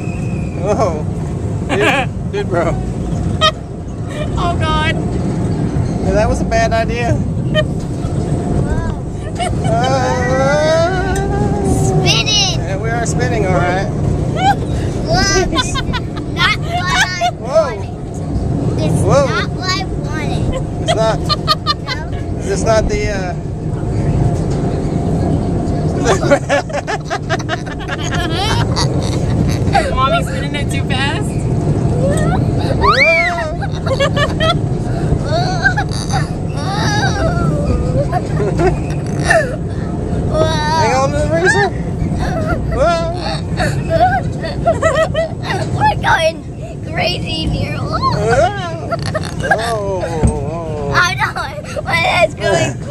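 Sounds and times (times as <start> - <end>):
steady low rumble: 0.0 - 52.9
adult and child laughing: 1.7 - 2.7, 3.4 - 4.4, 7.4 - 7.9, 9.0 - 12.0, 14.3 - 17.6, 20.4 - 22.4, 26.0 - 30.0, 32.0 - 46.0, 47.9 - 50.3
gliding cries of delight: 31.8 - 39.8
child squealing: 31.9 - 34.1, 35.2 - 38.2, 40.3 - 44.6, 47.8 - 49.8.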